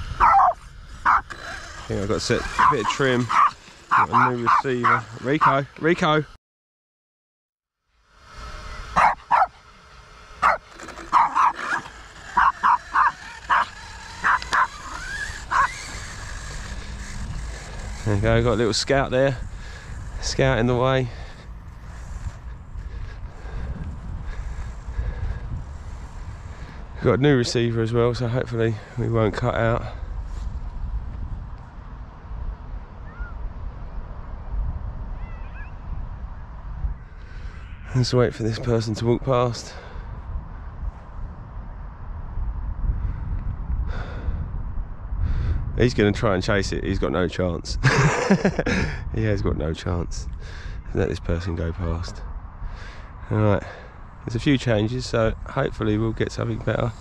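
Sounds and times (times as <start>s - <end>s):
wind buffeting microphone: 0.0s - 5.7s, 8.2s - 57.0s
dog barking in sharp yips: 0.2s - 1.3s, 2.6s - 5.6s, 9.0s - 9.5s, 10.4s - 11.8s, 12.4s - 14.8s
steady low hum: 7.8s - 34.9s
faint short bird calls: 33.0s - 33.4s, 35.2s - 35.9s, 37.0s - 38.0s.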